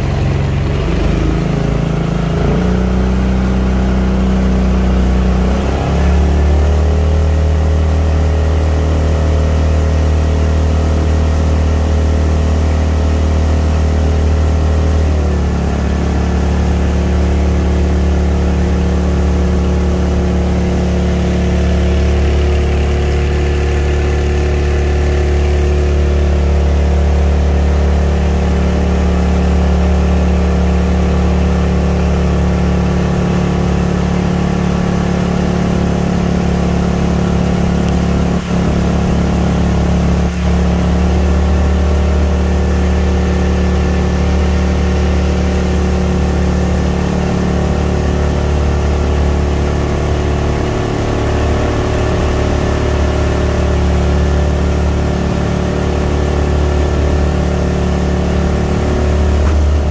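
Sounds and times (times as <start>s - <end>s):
small boat engine running: 0.0s - 59.9s.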